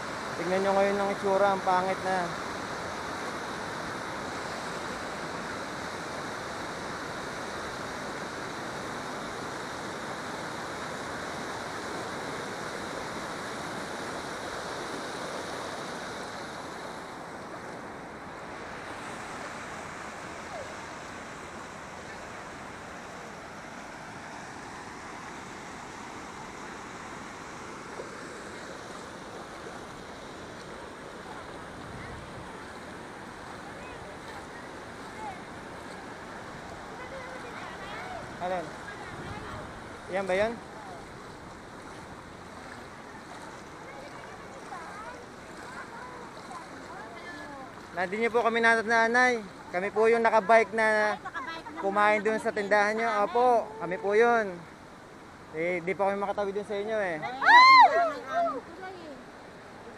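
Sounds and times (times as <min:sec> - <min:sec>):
water rushing over spillway: 0:00.0 - 0:59.9.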